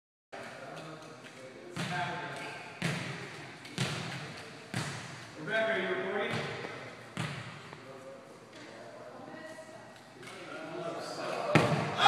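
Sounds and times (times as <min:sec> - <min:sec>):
murmur of voices: 0:00.4 - 0:12.0
ball bouncing on wooden floor: 0:06.3 - 0:07.7.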